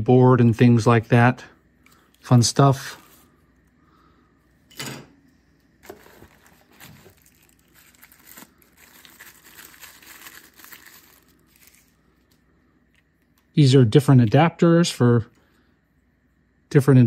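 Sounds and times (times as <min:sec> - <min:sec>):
paper crinkling and tearing: 0:05.8 - 0:12.0
hands handling package: 0:05.8 - 0:12.4.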